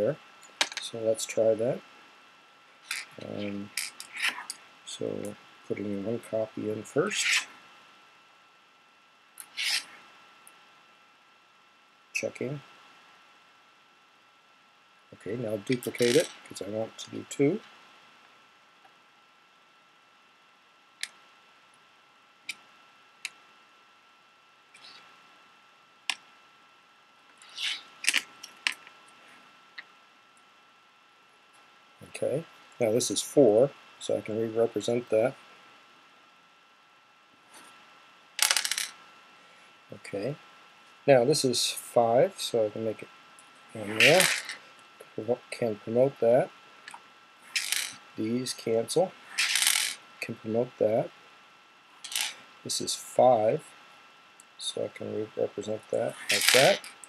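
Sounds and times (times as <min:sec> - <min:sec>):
faint steady whine: 0:00.0 - 0:57.0
pebble counters clattering: 0:15.9 - 0:16.4, 0:38.4 - 0:38.9, 0:44.0 - 0:44.6, 0:47.5 - 0:48.0, 0:49.4 - 0:50.0, 0:52.0 - 0:52.4, 0:56.2 - 0:56.9.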